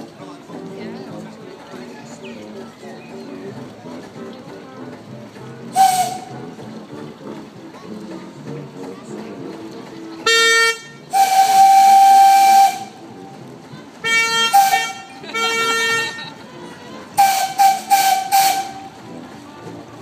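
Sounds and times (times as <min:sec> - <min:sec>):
low reedy horn blasts: 0:05.0 - 0:07.7, 0:10.2 - 0:13.4, 0:14.0 - 0:16.3, 0:17.1 - 0:19.3
steam whistle blasts: 0:05.7 - 0:06.5, 0:10.3 - 0:13.1, 0:14.1 - 0:16.0, 0:17.2 - 0:19.0.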